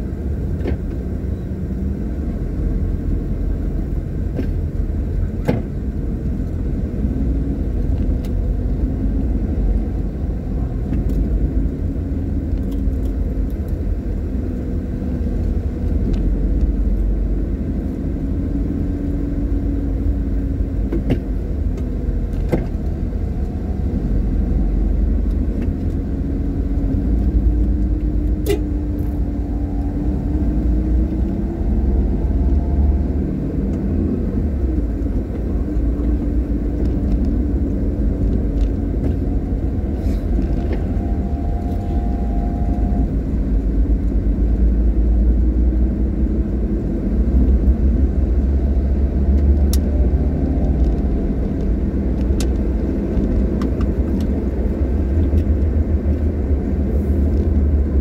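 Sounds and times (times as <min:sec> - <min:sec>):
car driving on road: 0:00.0 - 0:58.0.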